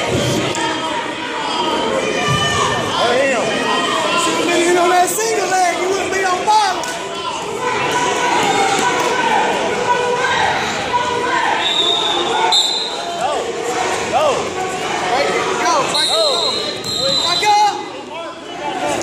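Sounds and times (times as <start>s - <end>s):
echoing chatter of spectators: 0.0s - 19.0s.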